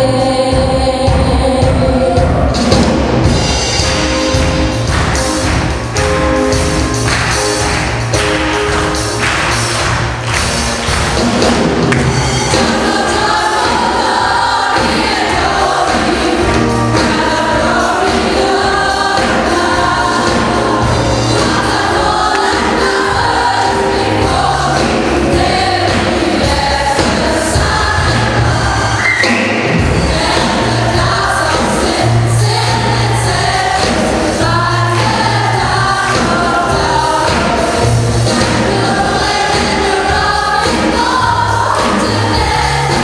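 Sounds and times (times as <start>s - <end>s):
band with bass and drums: 0.0s - 43.0s
choir singing gospel song: 0.0s - 43.0s.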